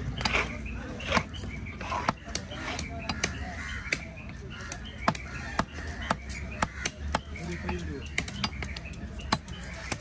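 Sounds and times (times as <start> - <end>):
cleaver chopping on wooden block: 0.2 - 10.0.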